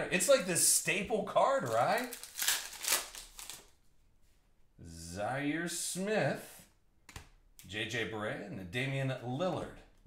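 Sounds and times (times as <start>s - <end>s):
cellophane wrapper crinkling: 1.6s - 3.8s.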